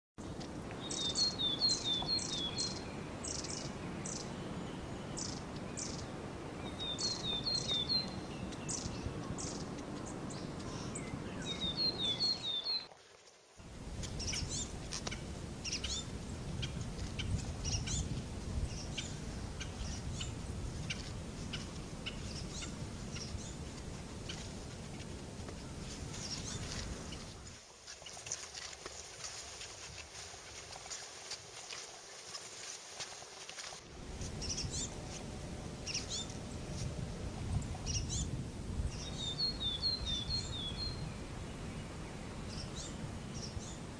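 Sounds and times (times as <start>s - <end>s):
background hiss: 0.2s - 43.9s
small birds chirping: 0.8s - 12.9s, 14.0s - 28.7s, 34.2s - 35.2s, 35.8s - 36.9s, 37.5s - 43.9s
low rumble: 33.9s - 43.9s.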